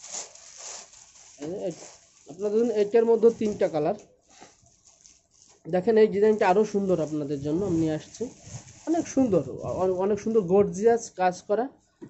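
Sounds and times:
plastic packaging rustling: 0.0 - 10.9.

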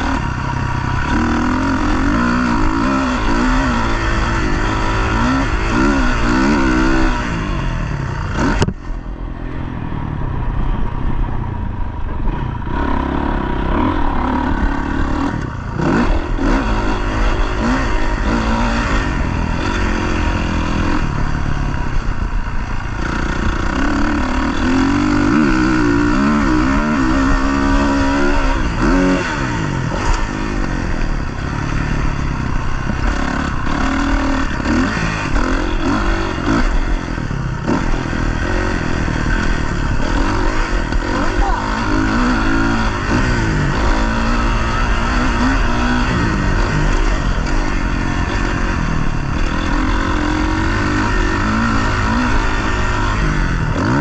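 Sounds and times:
dirt bike engine revving: 0.0 - 9.6, 11.7 - 54.0.

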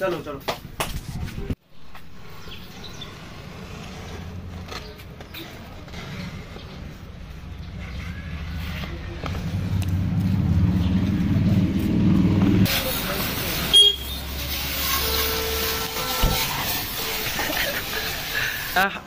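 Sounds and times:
low engine-like hum: 7.1 - 12.7
water spraying from hose: 12.6 - 19.0
short horn-like tone: 14.8 - 17.2.

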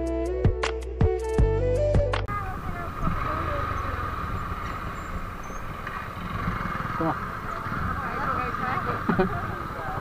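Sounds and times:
background music: 0.0 - 3.7
faint voices: 2.3 - 10.0
motorcycle idling low rumble: 2.3 - 10.0.

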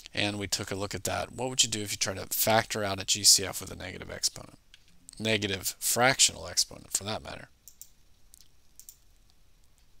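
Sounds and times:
faint computer mouse clicks: 7.6 - 9.9.

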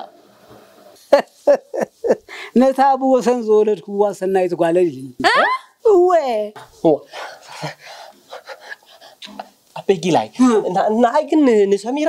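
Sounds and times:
man laughing: 1.1 - 2.4
man speaking: 9.3 - 12.0.

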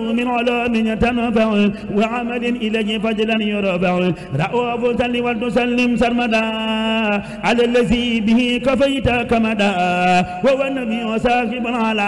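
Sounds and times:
man chanting devotional verse: 0.0 - 12.0.

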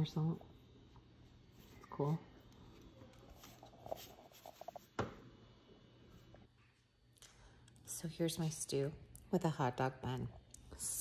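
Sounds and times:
soft handling scrapes: 1.3 - 5.0.

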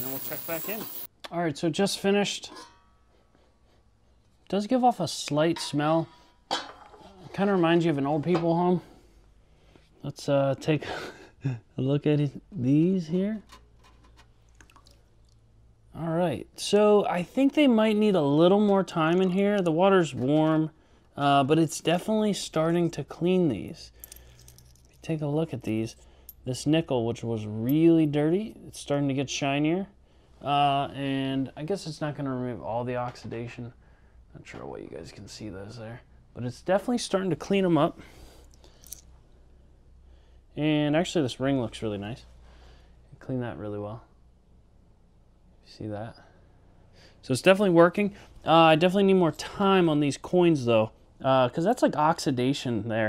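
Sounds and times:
coins clicking in metal basket: 0.0 - 1.1
water dripping: 14.5 - 15.4.

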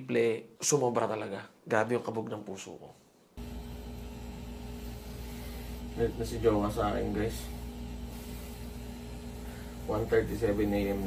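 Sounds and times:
tattoo machine buzzing: 3.4 - 11.0.

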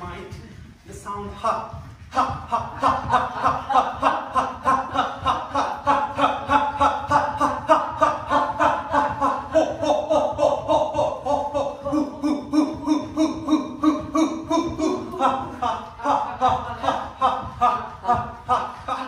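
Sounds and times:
man chanting ha: 5.4 - 16.5.

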